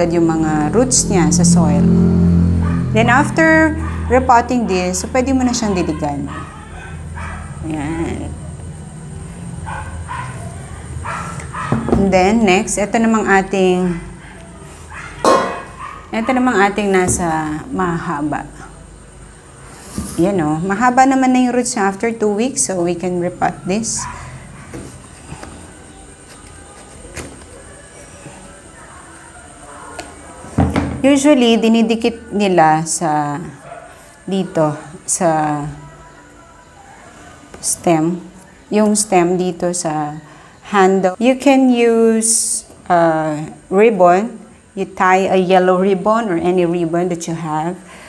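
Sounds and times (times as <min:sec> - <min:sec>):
low hum: 0:00.0 - 0:05.5
dog barking: 0:02.6 - 0:04.5, 0:05.4 - 0:07.7, 0:09.6 - 0:12.0, 0:13.8 - 0:16.7, 0:23.8 - 0:25.0, 0:33.5 - 0:34.9.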